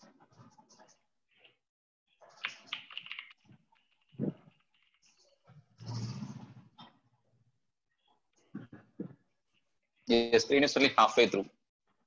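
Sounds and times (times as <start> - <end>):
computer keyboard typing: 2.2 - 5.4.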